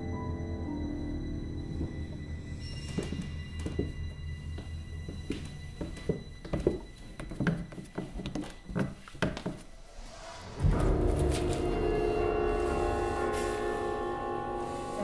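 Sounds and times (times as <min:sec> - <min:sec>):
droning horror music: 0:00.0 - 0:07.2, 0:10.1 - 0:15.0
footsteps on stairs: 0:01.7 - 0:09.8.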